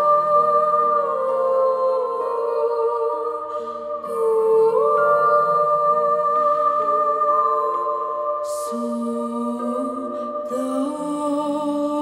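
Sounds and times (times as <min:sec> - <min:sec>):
women singing hymn-like melody: 0:00.0 - 0:12.0.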